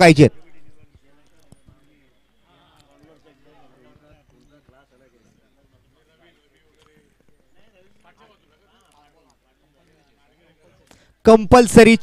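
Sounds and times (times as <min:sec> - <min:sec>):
distant chatter and calls: 0:00.3 - 0:11.3.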